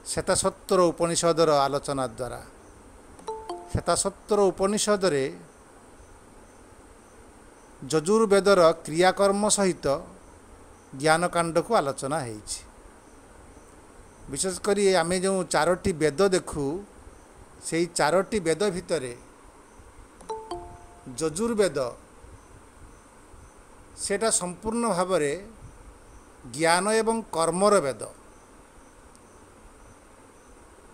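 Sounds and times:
faint high-pitched background tone: 0:00.0 - 0:12.4, 0:13.0 - 0:30.7
faint insect chirps: 0:00.0 - 0:30.9
insect trill: 0:00.1 - 0:30.6
man speaking: 0:03.7 - 0:05.5, 0:21.0 - 0:22.0.

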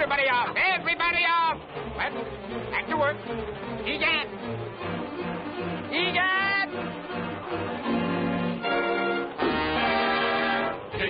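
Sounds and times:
orchestral chord: 0:00.0 - 0:11.0.

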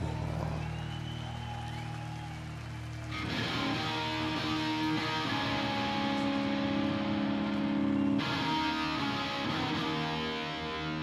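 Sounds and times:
electric guitars and bass chord: 0:03.2 - 0:11.0.

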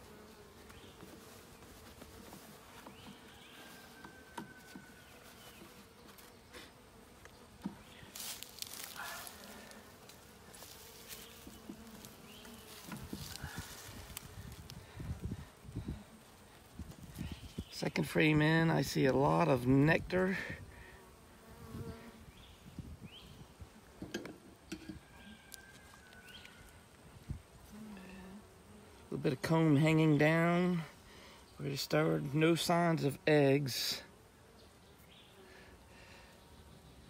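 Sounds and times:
bees buzzing: 0:00.0 - 0:25.6, 0:26.2 - 0:36.8.

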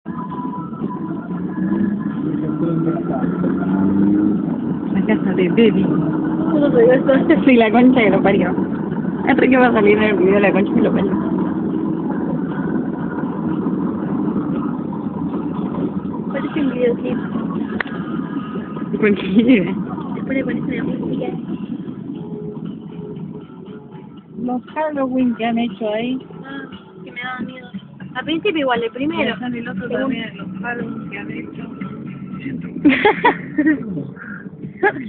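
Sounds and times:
car engine noise: 0:00.0 - 0:35.0
road noise: 0:00.0 - 0:35.0.

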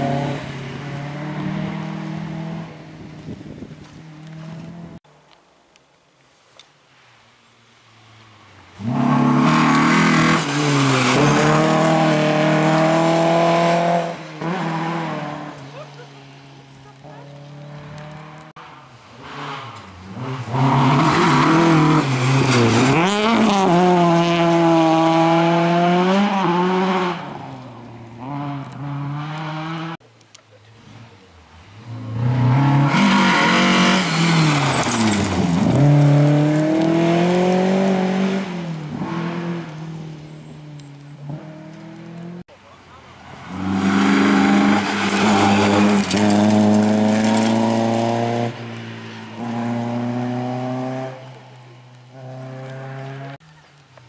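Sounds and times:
rally car engines revving past: 0:00.0 - 0:05.0, 0:08.1 - 0:30.0, 0:30.8 - 0:53.4.

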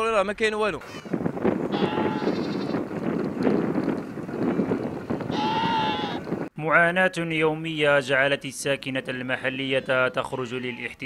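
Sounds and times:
sheep bleating: 0:01.7 - 0:02.8, 0:05.3 - 0:06.2.

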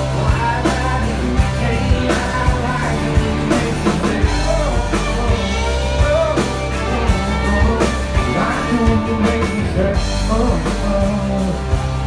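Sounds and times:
live band playing country-pop: 0:00.0 - 0:12.0.

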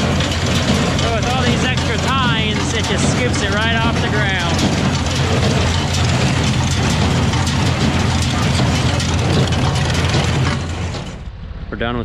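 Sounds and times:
baler tines clattering: 0:00.0 - 0:11.3
tractor engine humming: 0:00.0 - 0:11.3.

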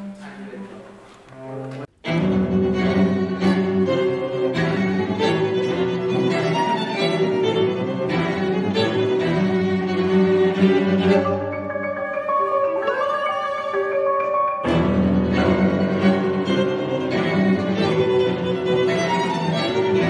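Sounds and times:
bowed strings ensemble playing: 0:00.0 - 0:20.0.

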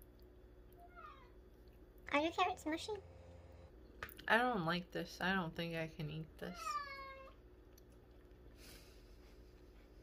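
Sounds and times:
cat meowing: 0:00.8 - 0:01.4, 0:06.5 - 0:07.4.

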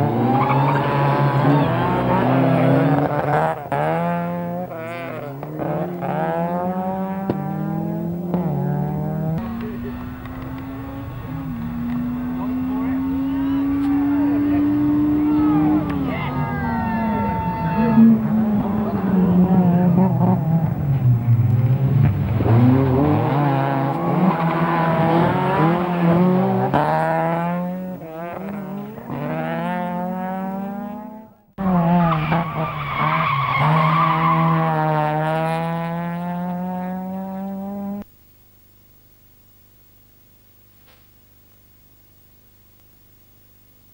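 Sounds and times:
rally car engines revving: 0:00.0 - 0:38.1.

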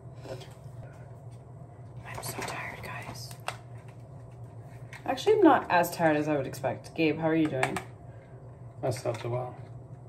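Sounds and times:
steady low hum: 0:00.0 - 0:10.0
woman whispering: 0:02.0 - 0:03.4.

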